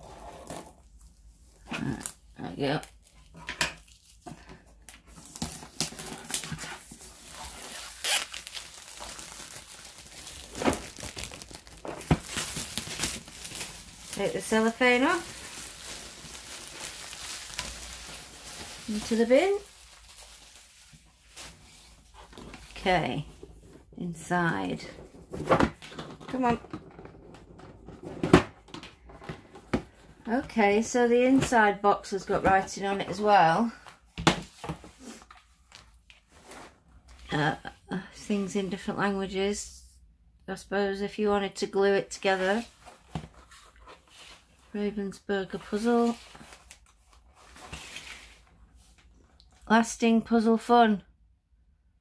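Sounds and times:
plastic wrap crackling and ripping: 4.8 - 22.8.

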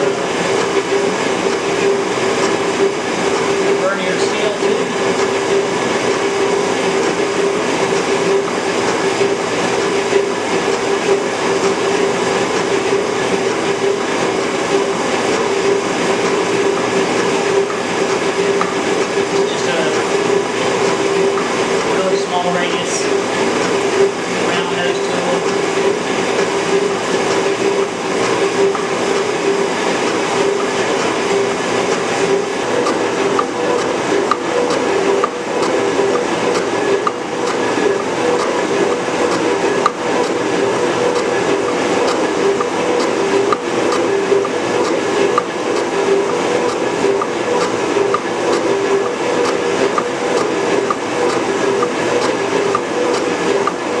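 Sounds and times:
machine hum: 0.0 - 54.0.

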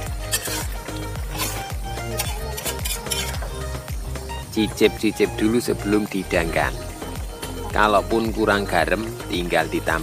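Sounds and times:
music with steady beat: 0.0 - 10.0
metal spatula scraping a wok: 0.2 - 3.6.

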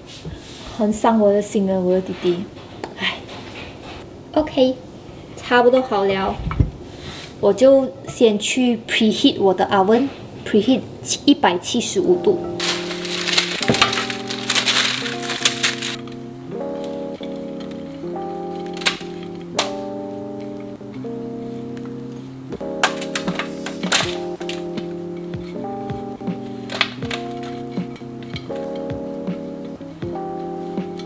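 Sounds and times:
calm lo-fi music: 7.4 - 31.0
clicks and clinks: 26.6 - 28.9.

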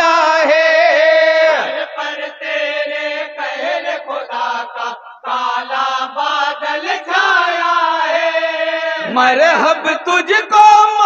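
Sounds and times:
men chanting in chorus: 0.0 - 11.0.

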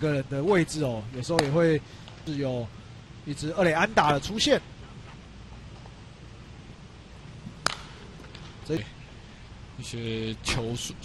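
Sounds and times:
baseball hitting catcher's mitt: 7.6 - 8.5.

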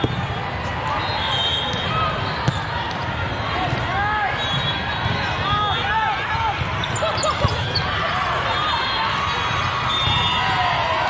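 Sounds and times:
babble of many voices: 0.0 - 10.2
sneaker squeaks on court floor: 6.7 - 8.2.

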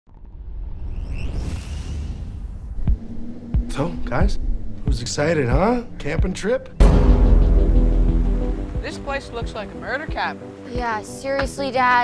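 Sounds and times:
low rumbling drone: 0.1 - 10.6
deep thumps: 2.0 - 10.3
man speaking: 3.7 - 6.8.

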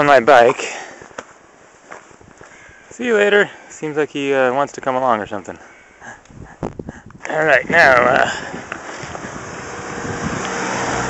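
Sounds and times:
wind rushing over microphone: 6.2 - 11.0.

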